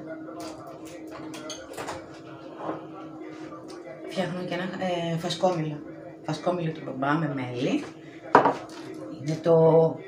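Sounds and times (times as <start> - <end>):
steady low hum: 2.0 - 10.0
mug knocking on counter: 8.3 - 8.7.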